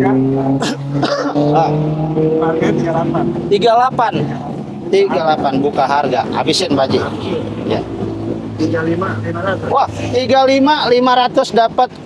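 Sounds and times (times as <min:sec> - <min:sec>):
car engine idling: 0:00.0 - 0:12.0
voices: 0:00.0 - 0:12.0.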